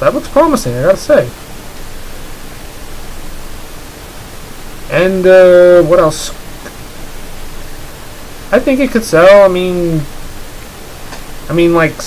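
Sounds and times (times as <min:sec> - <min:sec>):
man speaking: 0:00.0 - 0:01.4, 0:04.9 - 0:06.4, 0:08.5 - 0:10.1, 0:11.5 - 0:12.0
background hiss: 0:00.0 - 0:12.0.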